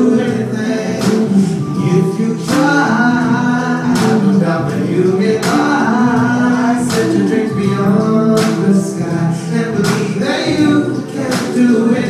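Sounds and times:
man singing into microphone: 0.0 - 12.0
organ accompaniment: 0.0 - 12.0.

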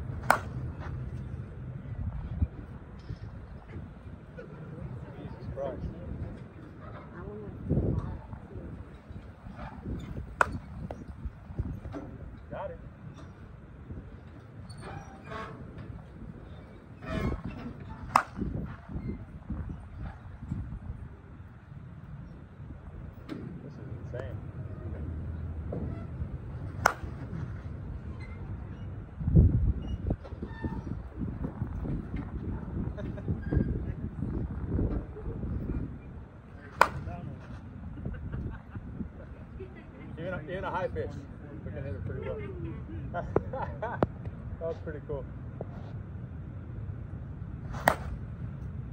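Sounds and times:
softball bat cracks: 0.2 - 0.6, 18.1 - 18.5, 26.7 - 27.2, 36.8 - 37.1, 47.8 - 48.2.

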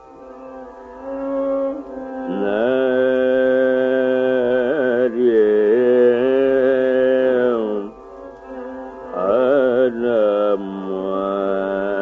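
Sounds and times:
steady drone: 0.0 - 12.0.

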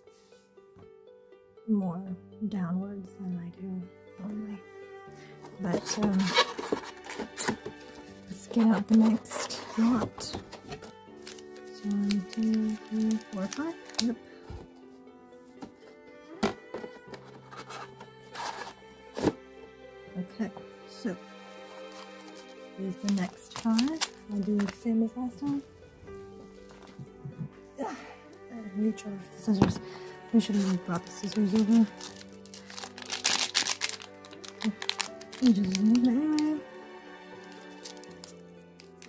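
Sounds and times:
soft background music: 0.0 - 39.0
foil wrappers rustling: 5.6 - 14.2, 21.6 - 25.6, 29.9 - 36.6, 37.6 - 39.0.

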